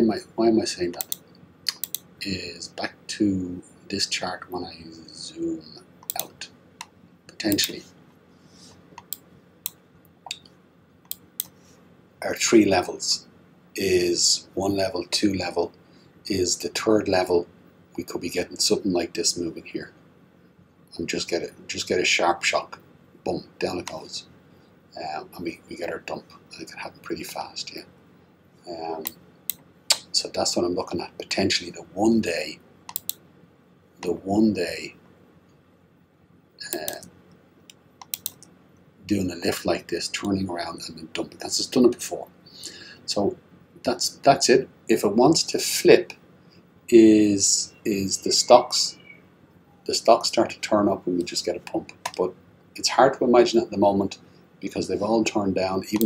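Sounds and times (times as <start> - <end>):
computer mouse clicks: 1.0 - 2.1, 6.0 - 6.9, 7.5 - 7.8, 9.0 - 11.6, 32.9 - 33.2, 37.7 - 38.5.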